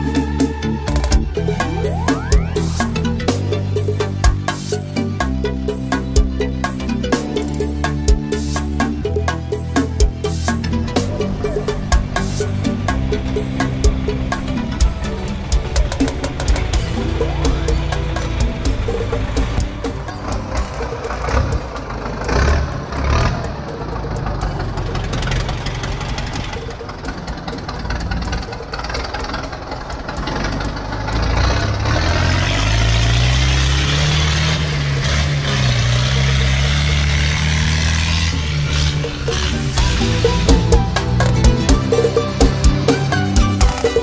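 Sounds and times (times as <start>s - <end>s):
background music: 0.0s - 44.0s
loader engine running: 0.0s - 44.0s.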